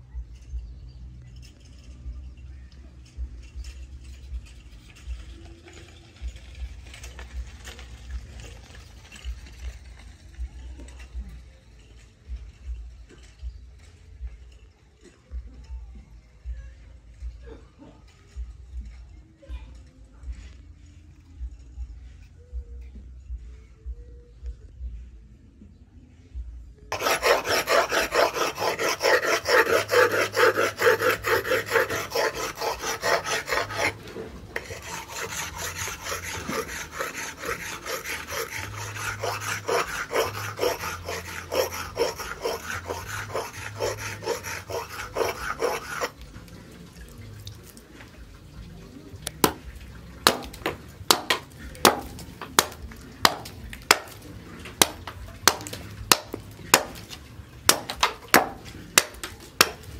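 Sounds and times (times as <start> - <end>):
axe scraping on sharpening stone: 26.9 - 46.2
axe chopping into wood: 50.3 - 54.1, 54.8 - 57.0, 57.7 - 59.8.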